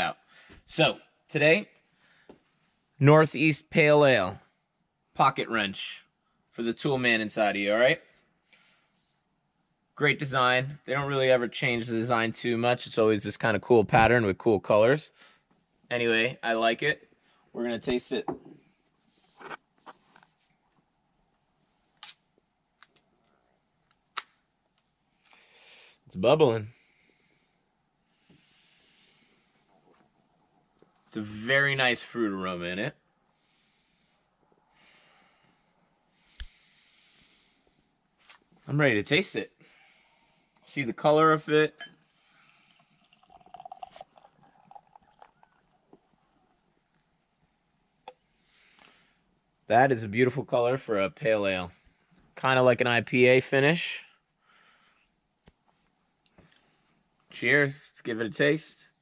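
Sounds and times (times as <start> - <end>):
sharp click: 24.1 - 24.4
beer pouring into a glass: 41.8 - 46.2
gurgling and fizzing: 42.3 - 46.2.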